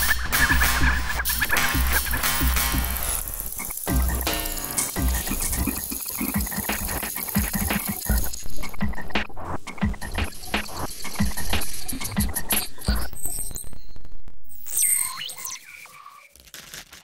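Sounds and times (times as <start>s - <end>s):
dense electronic clicks: 0.4s - 9.2s.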